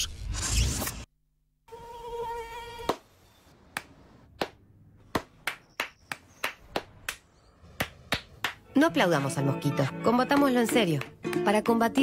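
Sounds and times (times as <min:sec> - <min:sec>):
mosquito buzzing whine: 0:01.7 - 0:02.9
hand claps: 0:03.7 - 0:08.6, 0:10.3 - 0:12.0.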